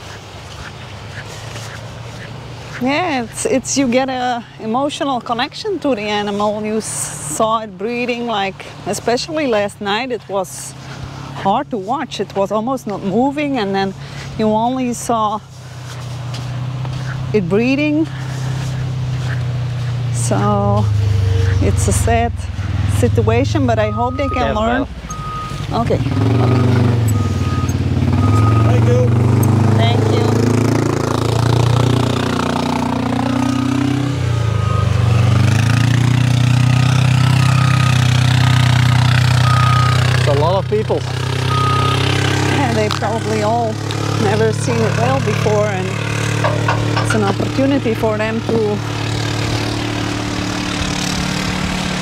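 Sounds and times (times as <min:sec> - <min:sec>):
utility vehicle engine running: 0:12.5 - 0:52.0
short high beep: 0:23.9 - 0:25.6.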